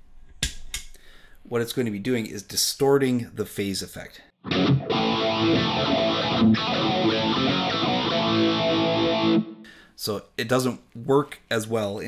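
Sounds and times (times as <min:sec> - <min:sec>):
distorted electric guitar with phaser: 0:04.4 - 0:09.6.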